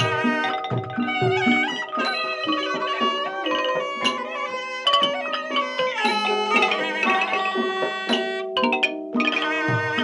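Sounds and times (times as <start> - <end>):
hard-mallet xylophones: 0.0 - 10.0.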